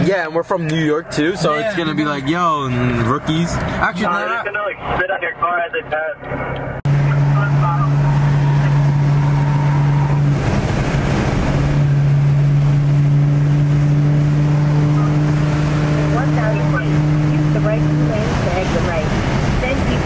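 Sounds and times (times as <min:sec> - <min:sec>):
car engine and road hum: 0:00.0 - 0:20.0.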